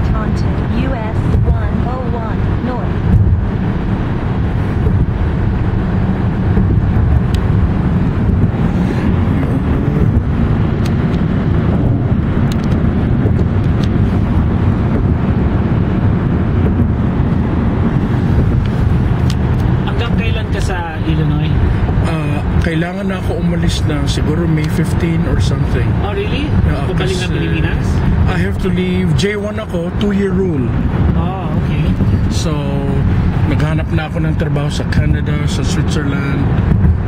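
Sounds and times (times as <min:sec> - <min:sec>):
car road noise at highway speed: 0:00.0 - 0:37.0.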